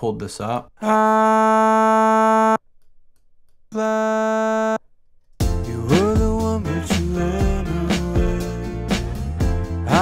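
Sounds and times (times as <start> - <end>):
steady held vocal tone: 3.7 - 4.8
person singing over backing track: 5.5 - 9.0, 9.8 - 10.0.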